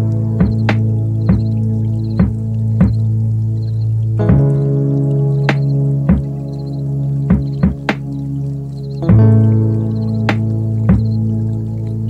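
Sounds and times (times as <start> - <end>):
soft struck notes: 5.4 - 8.3.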